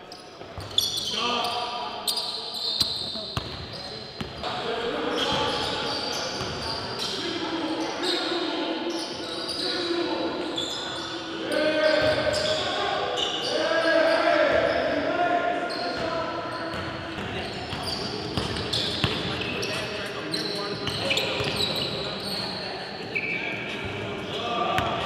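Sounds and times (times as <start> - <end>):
players' voices: 0.0 - 25.0.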